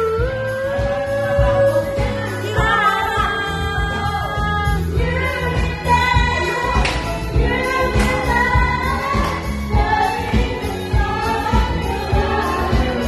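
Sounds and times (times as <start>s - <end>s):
pop backing track with beat: 0.0s - 13.0s
woman singing into microphone: 0.0s - 13.0s.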